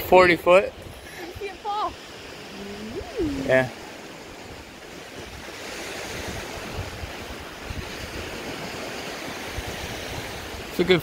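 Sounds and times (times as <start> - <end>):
waves washing on beach: 0.0 - 11.0
wind on microphone: 0.8 - 10.7
quiet voice sounds: 2.5 - 3.8.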